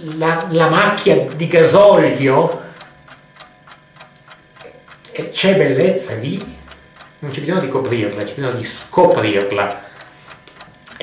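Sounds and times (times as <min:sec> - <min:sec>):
clock ticking: 0:00.0 - 0:11.0.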